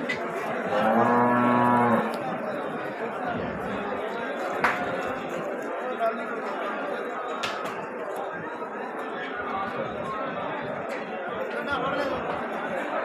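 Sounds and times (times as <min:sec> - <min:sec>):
cow mooing: 0:00.7 - 0:02.2.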